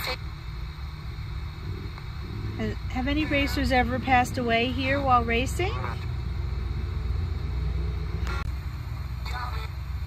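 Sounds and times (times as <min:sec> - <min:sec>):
low steady rumble: 0:00.0 - 0:10.0
radio static hiss: 0:00.0 - 0:10.0.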